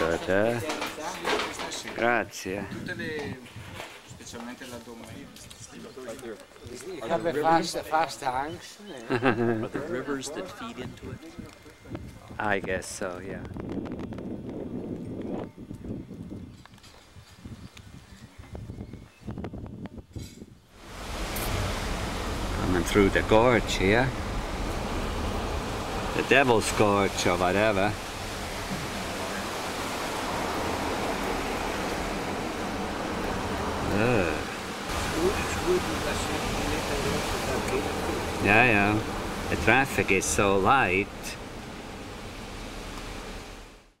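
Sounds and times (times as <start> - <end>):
car engine and road noise: 20.7 - 44.0.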